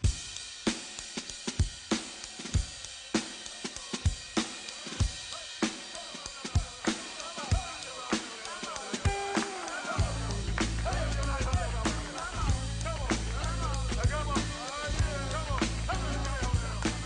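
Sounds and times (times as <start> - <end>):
funk drum groove: 0.0 - 17.0.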